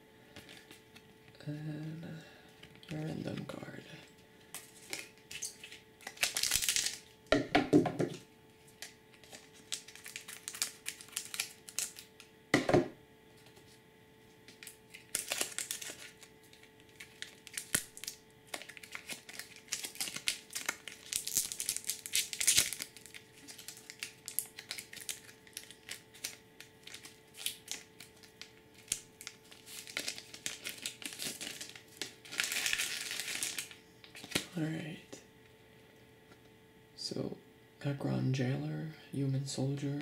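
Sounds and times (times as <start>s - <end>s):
foil wrapper crinkling: 4.4s - 7.2s, 8.6s - 12.4s, 13.3s - 34.6s.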